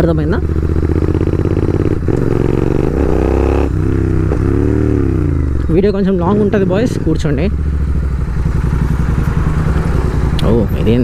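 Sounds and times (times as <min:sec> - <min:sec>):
motorcycle engine running steadily: 0:00.0 - 0:11.0.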